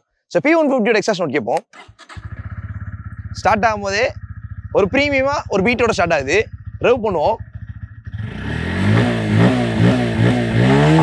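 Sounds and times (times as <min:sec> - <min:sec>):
motorcycle engine revving: 0:01.8 - 0:11.0.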